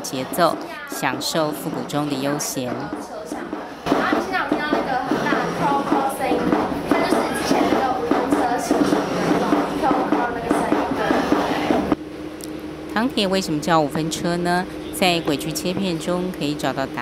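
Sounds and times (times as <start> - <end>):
woman talking: 0.0 - 11.9, 12.9 - 17.0.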